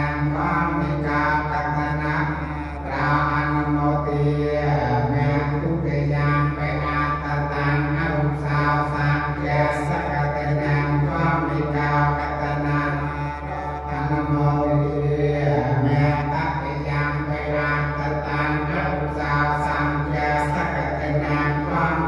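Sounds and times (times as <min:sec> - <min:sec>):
monks chanting into microphones: 0:00.0 - 0:22.0.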